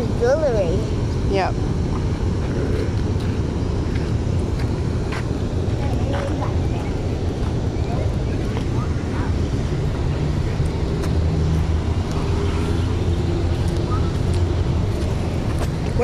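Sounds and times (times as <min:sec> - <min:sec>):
low rumble of traffic: 0:00.0 - 0:16.0
vehicle engine running: 0:00.0 - 0:16.0.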